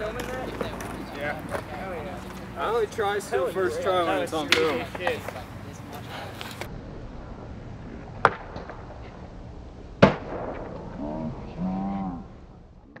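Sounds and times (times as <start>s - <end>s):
skateboard cracking: 0.0s - 2.5s, 4.4s - 5.5s
voices shouting: 0.0s - 6.7s
wheels rolling on concrete: 0.0s - 11.6s
skateboard landing slam: 8.2s - 8.9s, 10.0s - 10.9s.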